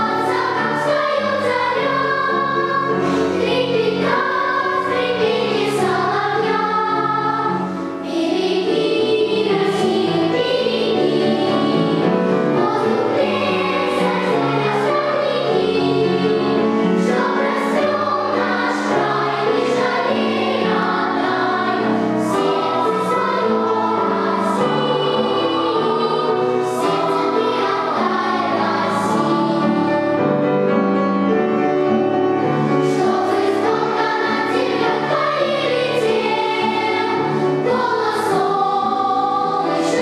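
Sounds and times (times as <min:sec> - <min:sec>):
children's choir singing: 0:00.0 - 0:40.0.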